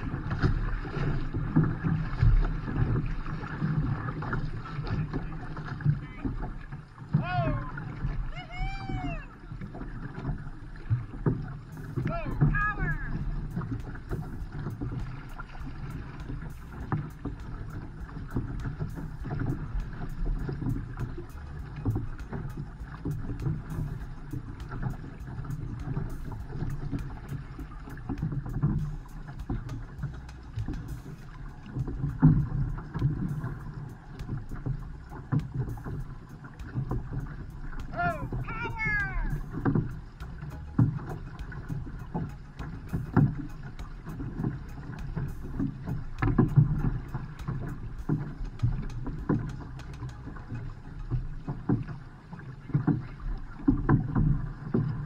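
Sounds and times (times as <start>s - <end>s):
paddles splashing water: 0.0s - 55.0s.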